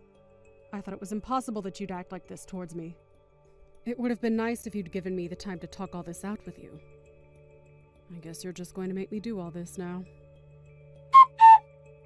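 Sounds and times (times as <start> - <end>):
soft background music drone: 0.0 - 12.0
two-note whistle sound effect: 11.1 - 11.7.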